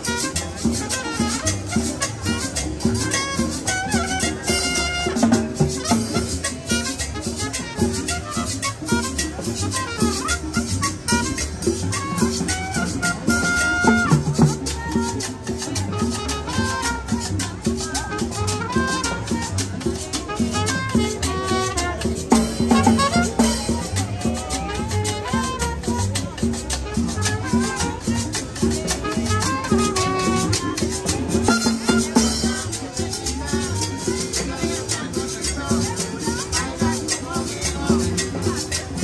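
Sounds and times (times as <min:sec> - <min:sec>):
drums keeping fast beat: 0:00.0 - 0:39.0
street band playing latin music: 0:00.0 - 0:39.0.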